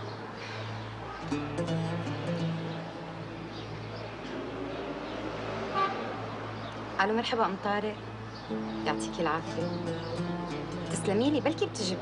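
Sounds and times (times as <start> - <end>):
street traffic: 0.0 - 12.0
car horn toot: 5.7 - 6.1.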